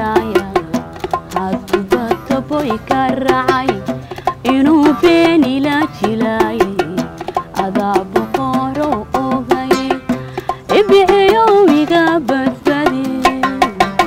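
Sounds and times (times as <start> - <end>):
hand drums: 0.0 - 14.0
oud: 0.0 - 14.0
woman singing: 0.0 - 14.0.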